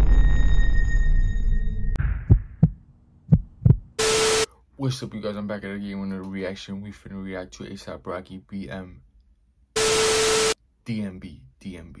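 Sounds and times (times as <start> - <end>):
low rumbling boom: 0.0 - 4.0
heartbeat double thumps: 2.0 - 4.0.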